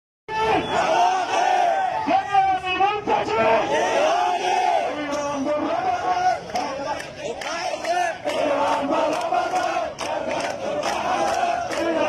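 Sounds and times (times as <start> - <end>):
crowd chanting loudly: 0.3 - 12.0.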